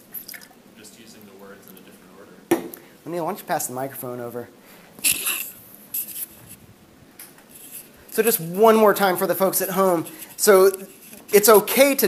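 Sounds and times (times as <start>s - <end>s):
scratchy rubbing noises: 5.0s - 6.6s, 7.5s - 12.0s.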